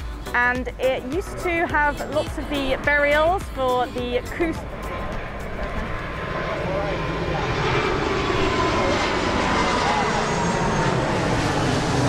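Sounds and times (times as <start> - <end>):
jet airliner flying overhead: 0.0 - 12.0.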